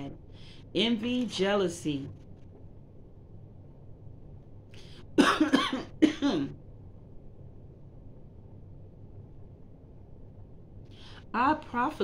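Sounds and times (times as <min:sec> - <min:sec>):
woman coughing: 0:05.2 - 0:06.6.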